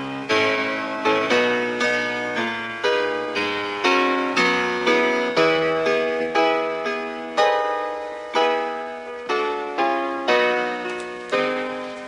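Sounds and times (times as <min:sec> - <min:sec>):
keyboard chords ringing: 0:00.0 - 0:12.0.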